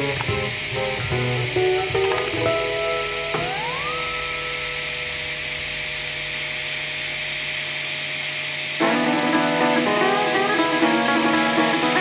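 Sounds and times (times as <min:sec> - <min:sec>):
guitar music: 0:00.0 - 0:05.8, 0:08.8 - 0:12.0
printer stepper motor whine: 0:00.0 - 0:12.0.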